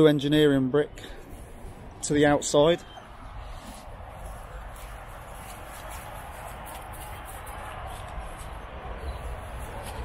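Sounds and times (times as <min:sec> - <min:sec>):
rustling steps through grass: 0:03.4 - 0:08.5.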